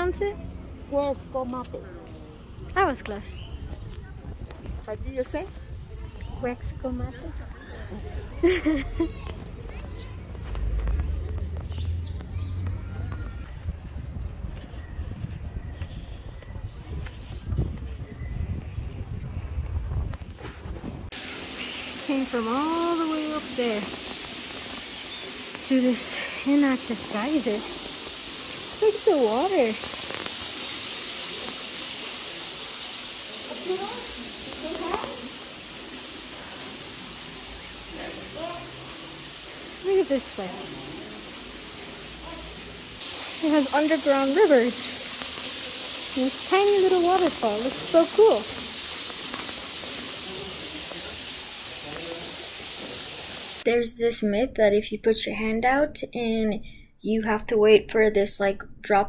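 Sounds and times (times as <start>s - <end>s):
faint distant voices: 0.0s - 19.6s, 21.4s - 43.5s, 44.9s - 53.6s
wind rumble on microphone: 3.4s - 7.5s, 13.2s - 21.1s.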